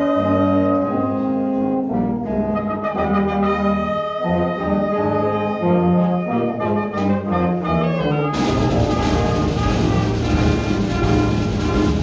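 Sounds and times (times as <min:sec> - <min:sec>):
concert band playing: 0:00.0 - 0:12.0.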